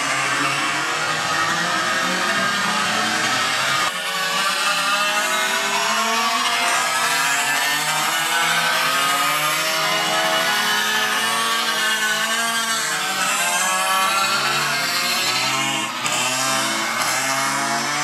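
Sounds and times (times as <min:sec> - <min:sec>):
rc car engines revving: 0:00.0 - 0:18.0.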